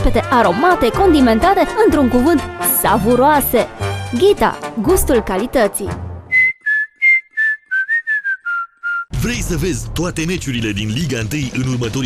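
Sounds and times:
whistled jingle: 6.3s - 9.1s.

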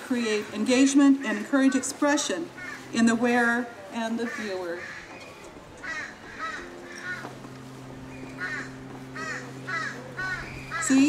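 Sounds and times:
crow cawing: 1.6s - 3.0s, 4.2s - 5.2s, 5.8s - 7.4s, 8.1s - 11.0s.

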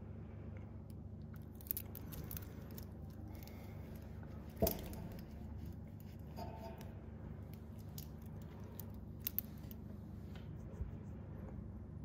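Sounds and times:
metal watch bracelet clinking: 1.5s - 5.4s, 7.5s - 9.8s.

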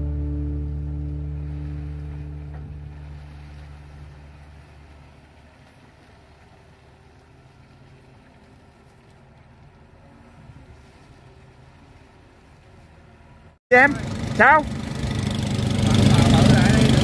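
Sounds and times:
guitar music: 0.0s - 4.0s
excavator engine running: 13.7s - 17.0s.

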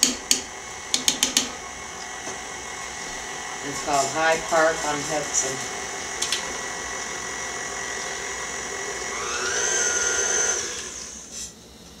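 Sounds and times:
stand mixer motor whine: 0.5s - 11.3s.

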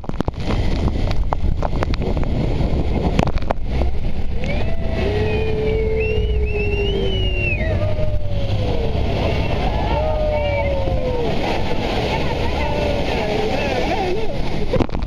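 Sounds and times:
speedboat engine and water rush: 0.0s - 15.0s
passengers shrieking: 4.3s - 14.4s.

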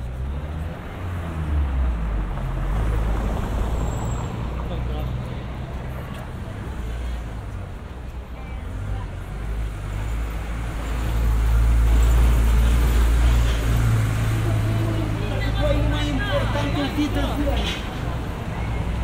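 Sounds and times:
vehicle engine rumble: 0.0s - 19.0s
people talking: 14.3s - 18.2s.

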